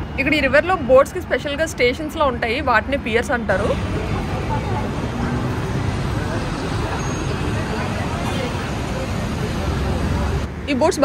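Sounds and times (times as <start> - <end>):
city road traffic: 0.0 - 11.0
faint voices: 3.6 - 10.6.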